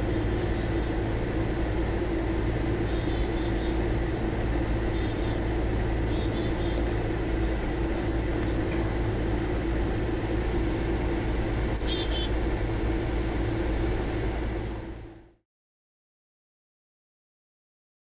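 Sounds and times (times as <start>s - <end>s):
outdoor hum and low rumble: 0.0s - 15.4s.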